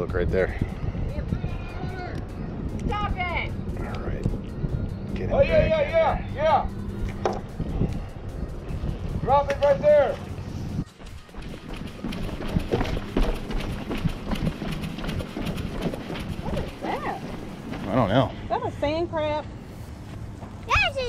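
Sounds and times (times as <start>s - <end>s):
voices: 0.0s - 12.6s, 16.3s - 19.6s
footsteps on wooden planks: 9.5s - 18.1s.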